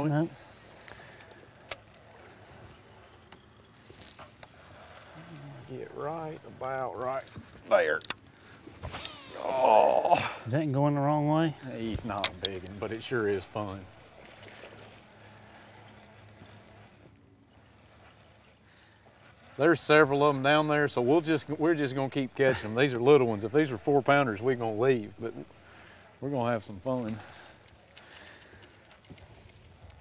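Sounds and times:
faint water lapping: 0.0s - 30.0s
fishing line whirring off reel: 0.3s - 5.6s, 8.8s - 9.9s, 12.2s - 23.0s.

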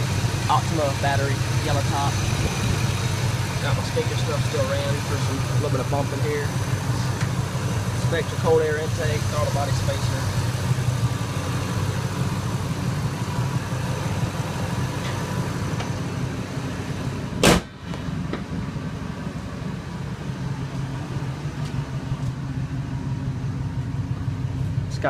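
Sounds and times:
truck engine idling: 0.0s - 25.0s
loud sharp thump: 17.4s - 18.5s.

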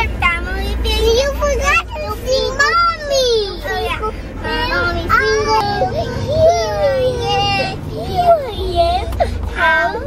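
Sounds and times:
child singing: 0.0s - 10.0s
low road rumble: 0.0s - 10.0s.

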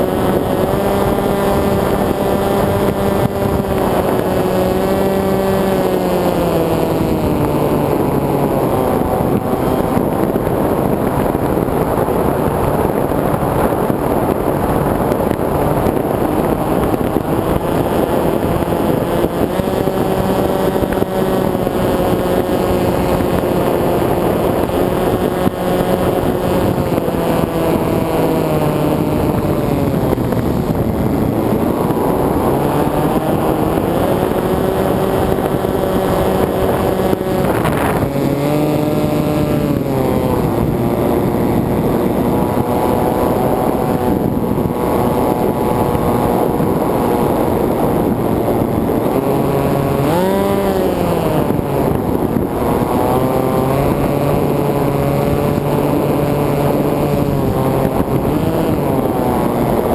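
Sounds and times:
electric motor and propeller whine: 0.0s - 59.9s
wind rush: 0.0s - 59.9s.

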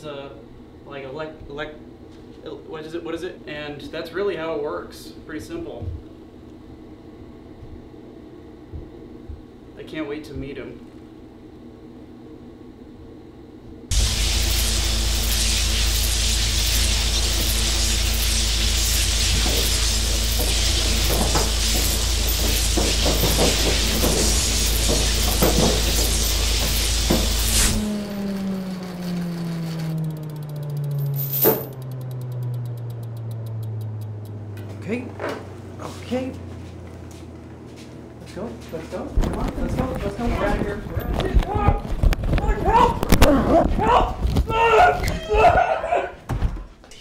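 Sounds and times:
loud music with crackling: 13.9s - 27.8s
low hum gliding down: 13.9s - 37.6s
sharp click: 29.2s - 34.7s.

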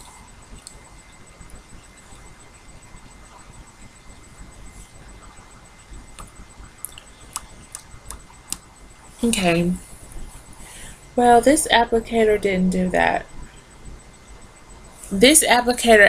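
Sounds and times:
faint high whine: 0.0s - 16.0s.

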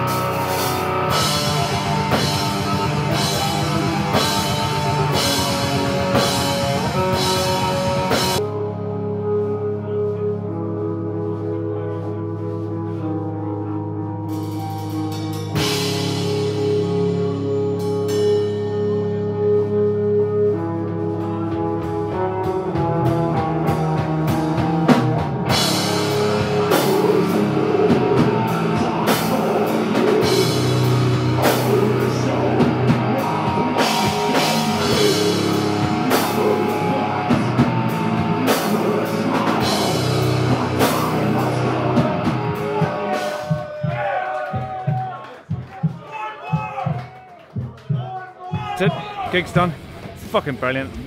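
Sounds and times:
distorted guitars and bass: 0.0s - 45.0s, 48.6s - 51.0s
death metal band playing loud: 0.0s - 47.0s, 48.5s - 51.0s.

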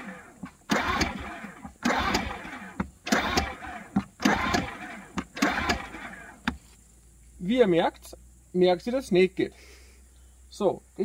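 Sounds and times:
generator pull-starter whirring: 0.0s - 6.8s.

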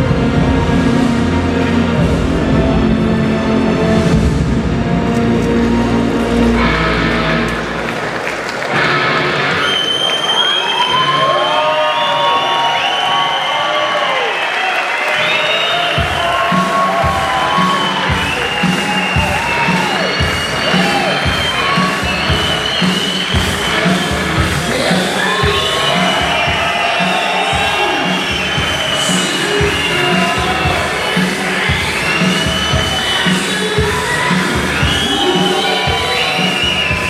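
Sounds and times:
music with a steady beat: 0.0s - 7.5s, 15.8s - 37.0s
audience cheering and applauding: 0.0s - 37.0s.

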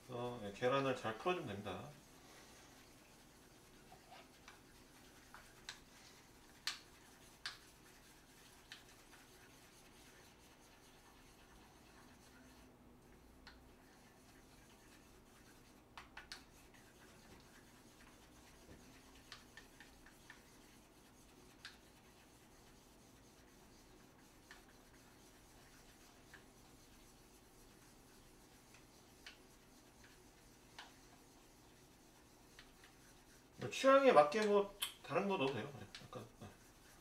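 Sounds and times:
chopsticks beating eggs in bowl: 0.6s - 37.0s.

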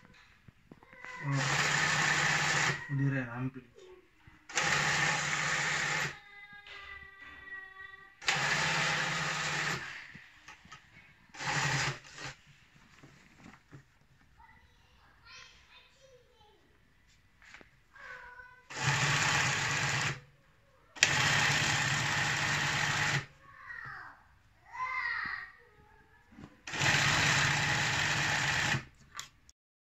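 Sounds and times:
sewing machine stitching: 1.1s - 3.2s, 4.5s - 6.2s, 8.2s - 12.4s, 18.7s - 20.2s, 21.0s - 23.3s, 26.6s - 29.0s.

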